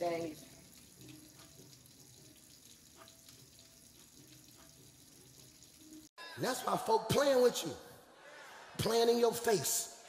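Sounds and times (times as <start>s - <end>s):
faucet running into a sink: 0.0s - 6.1s.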